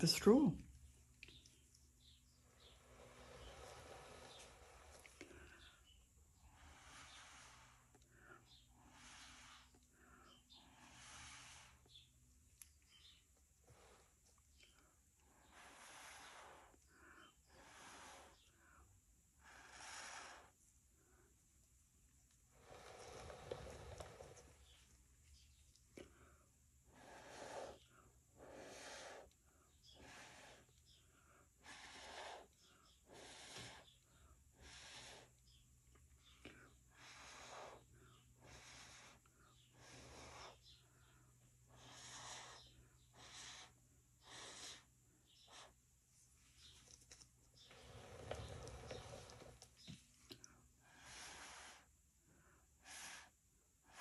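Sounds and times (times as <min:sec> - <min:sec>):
puffs of breath through a straw: 0:02.4 - 0:12.1, 0:12.9 - 0:21.3, 0:22.5 - 0:24.8, 0:26.0 - 0:35.6, 0:36.2 - 0:45.8, 0:50.4 - 0:54.0.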